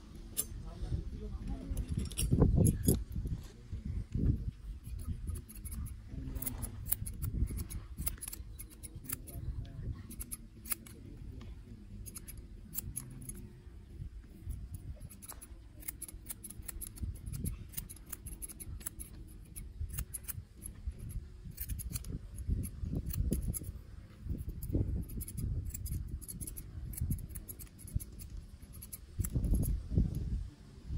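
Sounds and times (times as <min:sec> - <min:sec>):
scissors snipping hair: 0:04.7 - 0:09.4, 0:10.1 - 0:11.0, 0:12.0 - 0:13.4, 0:14.4 - 0:23.7, 0:24.3 - 0:29.8.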